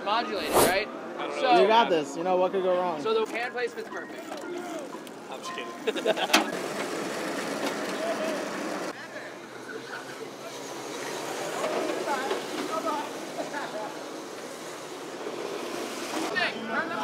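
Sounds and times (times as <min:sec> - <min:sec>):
electric kart sliding on asphalt: 0:09.8 - 0:16.5.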